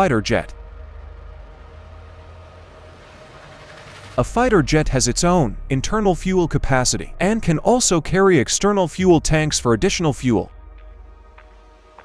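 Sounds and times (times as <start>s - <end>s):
aircraft engines droning: 0.0s - 12.0s.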